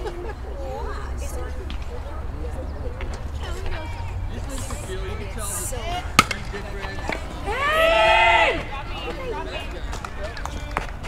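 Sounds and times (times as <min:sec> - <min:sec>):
metal bat hitting baseball: 0:06.1 - 0:06.5.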